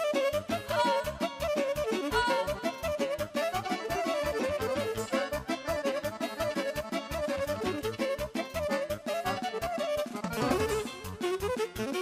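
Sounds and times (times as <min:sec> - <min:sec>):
accordion: 0:00.0 - 0:12.0
saxophone: 0:00.0 - 0:12.0.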